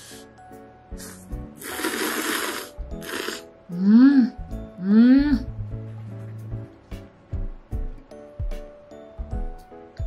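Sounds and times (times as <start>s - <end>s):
person slurping noodles: 1.0s - 3.5s.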